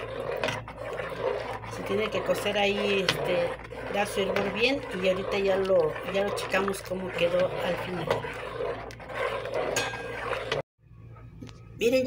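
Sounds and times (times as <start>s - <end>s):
spatula scraping metal pot: 0.0s - 10.6s.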